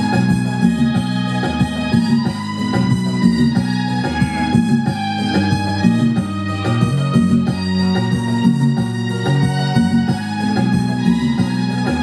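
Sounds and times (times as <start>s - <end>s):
organ-like electronic keyboard: 0.0s - 12.0s.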